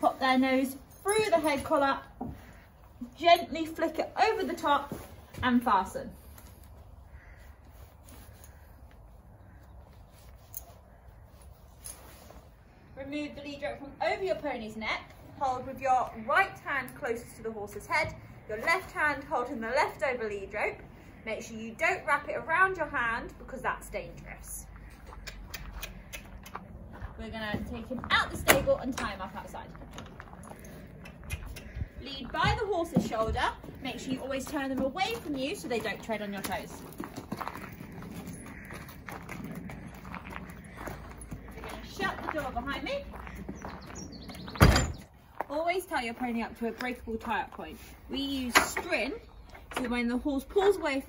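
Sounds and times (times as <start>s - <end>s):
pony hooves on stable floor: 0.0s - 7.3s, 24.9s - 50.9s.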